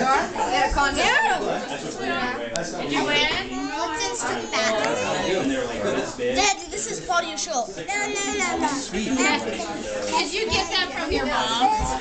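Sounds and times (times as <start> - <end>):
indistinct family chatter: 0.0 - 12.0.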